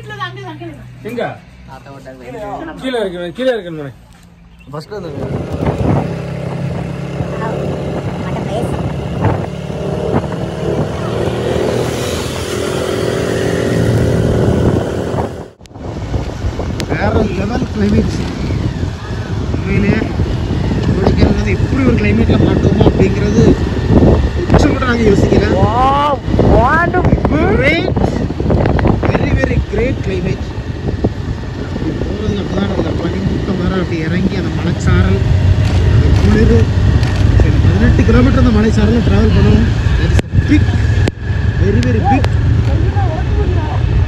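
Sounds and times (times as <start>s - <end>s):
voices: 0.0s - 14.6s, 16.7s - 44.0s
motorcycle engine: 0.0s - 44.0s.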